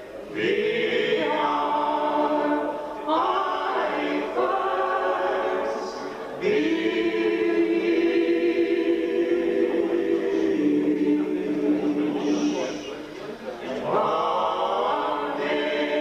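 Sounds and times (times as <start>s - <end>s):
woman and man singing in harmony: 0.3s - 12.8s, 13.8s - 16.0s.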